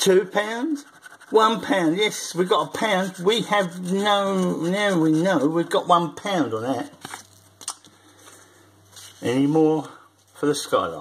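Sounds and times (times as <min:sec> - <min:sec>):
faint hum: 0:00.0 - 0:11.0
scratchcards handled on table: 0:07.0 - 0:07.3.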